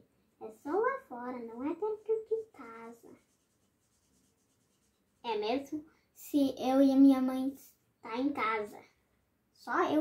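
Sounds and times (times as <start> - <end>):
marker rubbing on paper: 0.4 - 5.8.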